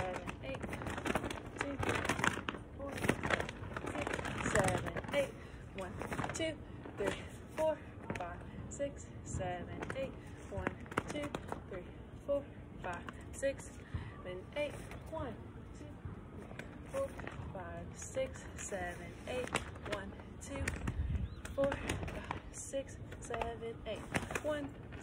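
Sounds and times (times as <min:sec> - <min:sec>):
flag silk swishing and flapping: 0:00.0 - 0:11.6.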